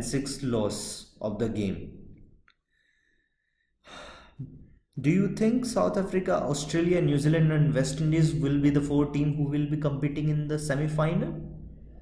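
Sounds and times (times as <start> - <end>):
man speaking: 0.0 - 2.0, 4.4 - 11.6.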